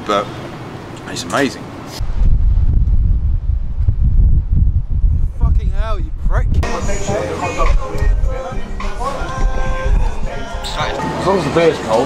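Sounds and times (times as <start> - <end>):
wind buffeting microphone: 2.0 - 11.0
background music: 6.6 - 12.0.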